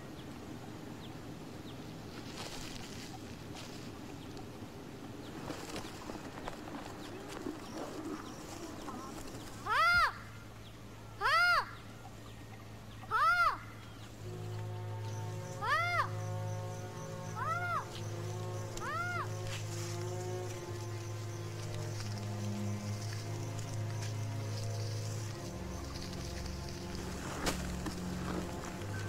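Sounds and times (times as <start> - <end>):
low held music chord: 13.8 - 29.0
animal calling: 14.8 - 29.0.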